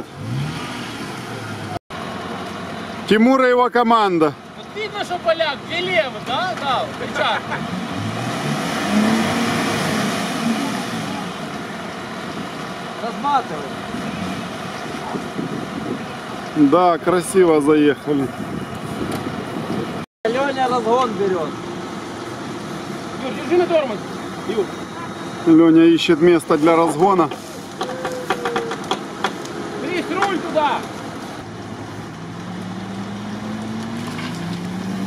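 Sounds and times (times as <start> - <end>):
off-road vehicle engines running: 0.0 - 35.0
wind on microphone: 14.3 - 16.3, 18.2 - 20.0.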